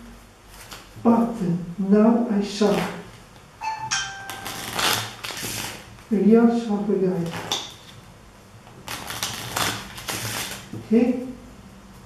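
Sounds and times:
playing cards riffle-shuffled: 4.3s - 6.0s, 8.8s - 10.8s.

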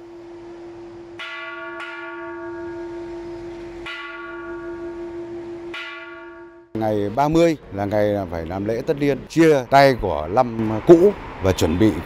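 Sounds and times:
steady sustained hum: 0.0s - 6.8s
bronze bell ringing: 1.2s - 6.9s.

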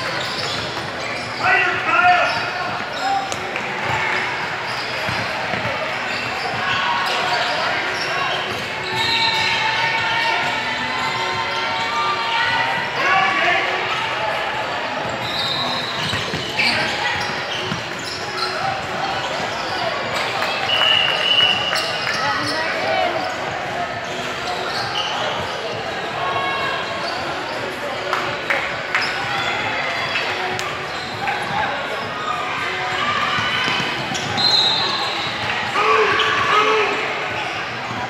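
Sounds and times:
indistinct shouts and chatter: 0.0s - 38.0s.

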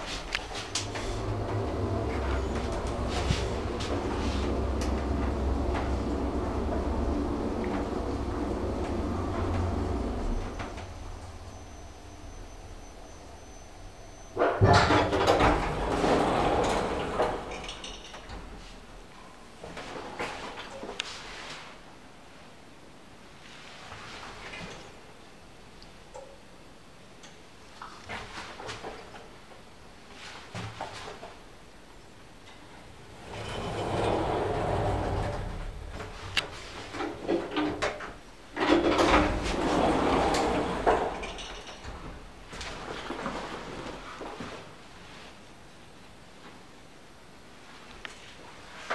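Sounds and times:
lift doors sliding open: 0.0s - 19.0s, 32.4s - 44.2s.

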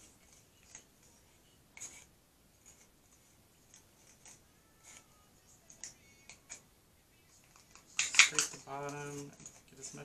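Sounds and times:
spatula scraping plastic cup: 1.8s - 2.9s.

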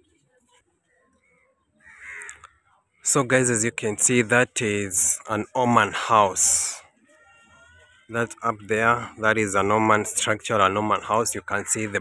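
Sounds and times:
crow cawing: 1.2s - 2.6s, 7.1s - 9.2s, 10.9s - 12.0s.

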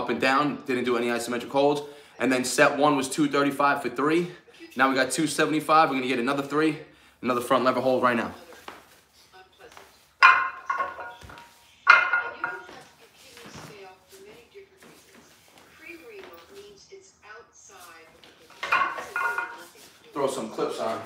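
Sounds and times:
weight plates clanking: 10.2s - 12.7s, 18.6s - 19.7s.

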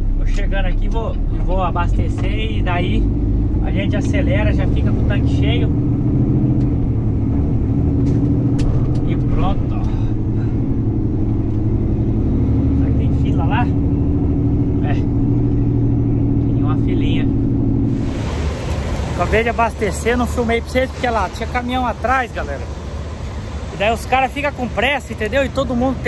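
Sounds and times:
truck diesel engine running: 0.0s - 26.0s.

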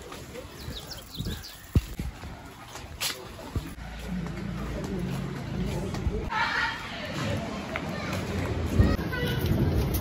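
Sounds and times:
footsteps: 1.6s - 10.0s.

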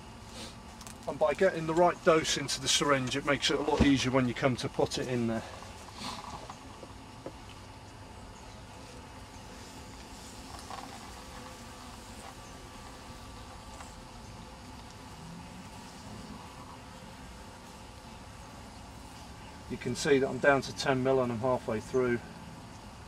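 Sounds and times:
bees humming: 0.0s - 23.0s
low outdoor background noise: 0.0s - 23.0s.

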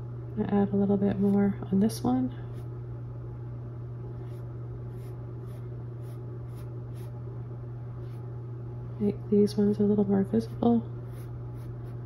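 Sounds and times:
low electrical hum: 0.0s - 12.0s
paintbrush strokes on canvas: 4.2s - 7.2s, 10.4s - 12.0s.

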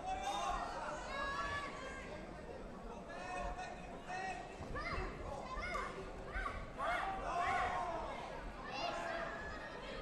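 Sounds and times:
hubbub of a hall: 0.0s - 10.0s.

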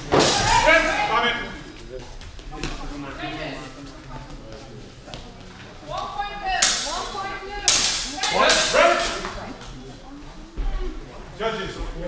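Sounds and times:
people shouting: 0.1s - 1.3s, 6.2s - 9.2s.

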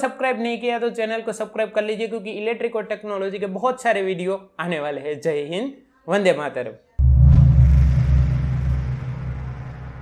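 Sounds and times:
deep rumbling boom: 7.0s - 10.0s.

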